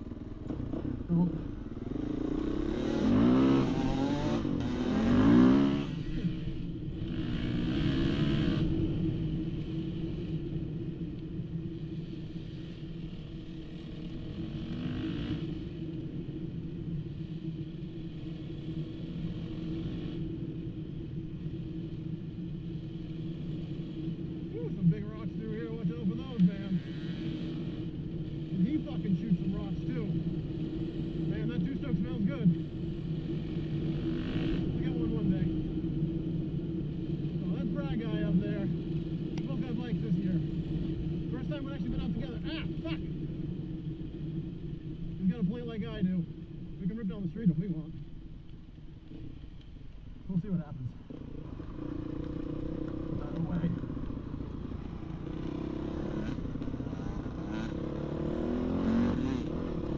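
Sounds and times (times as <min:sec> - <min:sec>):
motorcycle engine revving: 0:00.0 - 0:11.2, 0:12.0 - 0:16.3, 0:22.7 - 0:47.6, 0:51.0 - 0:59.9.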